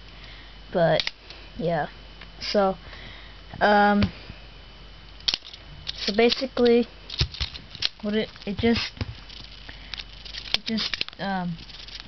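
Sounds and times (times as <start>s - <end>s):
quiet room noise: 0.0s - 12.0s.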